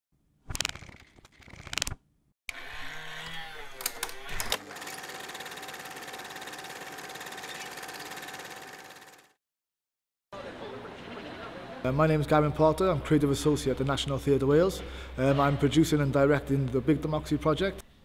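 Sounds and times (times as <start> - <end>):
fast mechanical rattle: 4.4 - 9.4.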